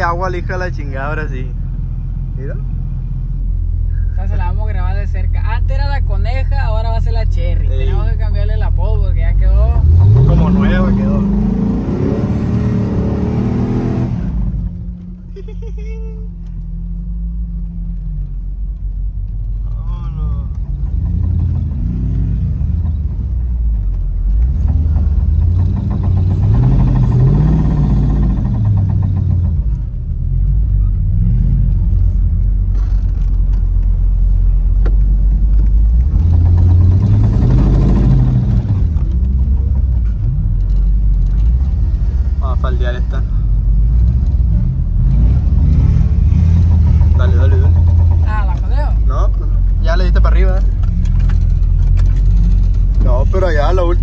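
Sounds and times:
truck engine revving: 9.5 - 15.0, 20.4 - 23.5, 24.2 - 33.4, 35.4 - 54.0.

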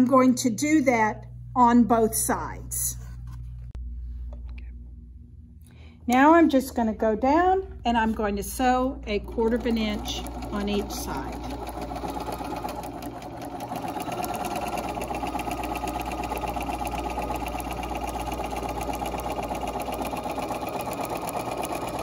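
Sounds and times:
electric sewing machine stitching: 8.6 - 22.0.

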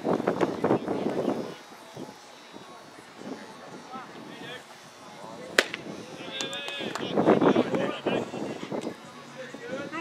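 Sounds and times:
baseball hitting mitt: 5.6 - 5.8.

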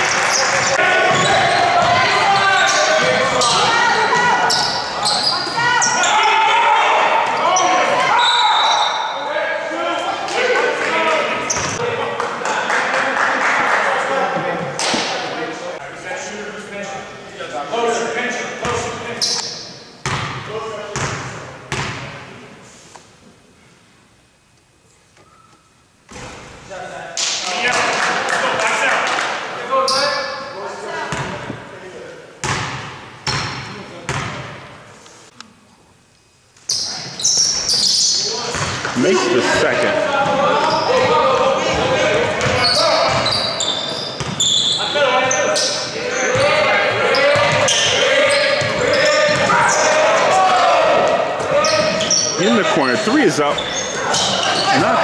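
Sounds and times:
people's voices: 36.9 - 44.1, 44.7 - 55.0.

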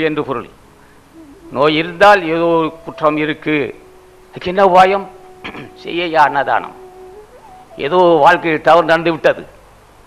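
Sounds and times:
man humming upward slide: 1.1 - 4.1, 5.0 - 8.2
man speaking into microphone: 1.5 - 3.8, 4.4 - 6.8, 7.8 - 9.5.

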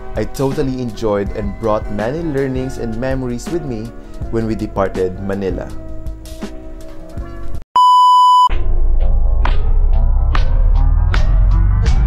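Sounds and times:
background music: 0.0 - 7.6
bass-heavy music: 0.0 - 7.6, 8.5 - 12.0
high electronic beep: 7.8 - 8.5.

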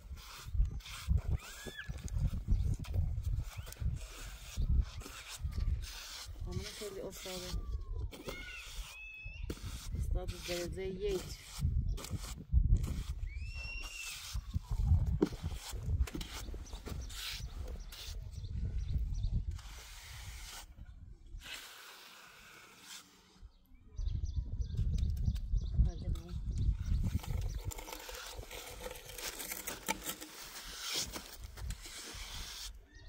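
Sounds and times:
trowel scraping wet concrete: 0.0 - 13.2, 13.8 - 18.3, 19.5 - 20.7, 21.4 - 23.4, 26.9 - 33.0.

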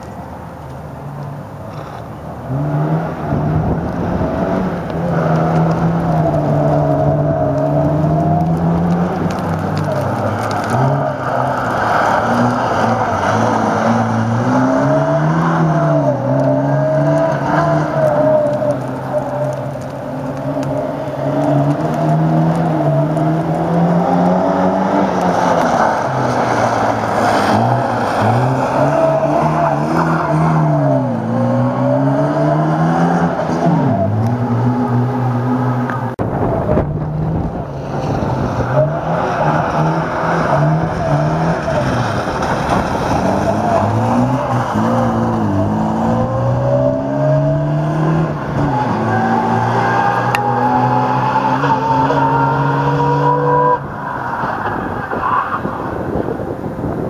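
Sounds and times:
rally car engine revving: 1.7 - 56.4
rough low rumble: 36.0 - 40.2.

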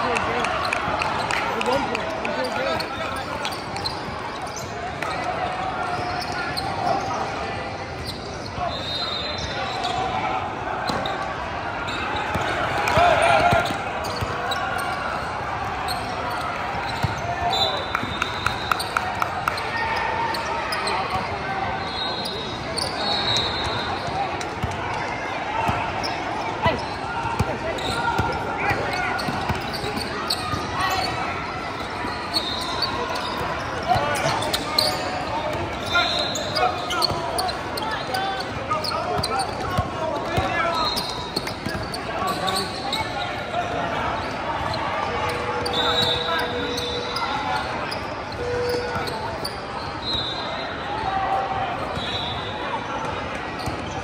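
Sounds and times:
people talking and calling out: 0.0 - 54.0
sneaker squeaks: 0.4 - 10.2, 10.8 - 50.9, 51.8 - 54.0.

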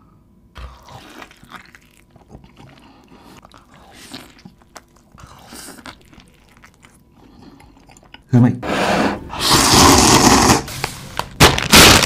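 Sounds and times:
slurping noodles: 0.6 - 8.1, 8.7 - 10.8
plastic packet crinkling: 11.2 - 12.0.

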